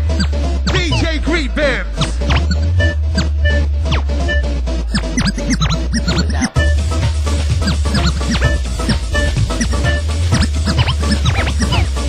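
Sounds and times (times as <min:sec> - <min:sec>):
house dance music: 0:00.7 - 0:01.2, 0:04.9 - 0:12.0.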